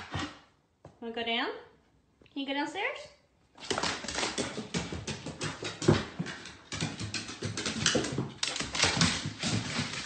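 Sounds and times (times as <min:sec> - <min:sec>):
dog claws clattering on wooden stairs: 0:03.6 - 0:10.0.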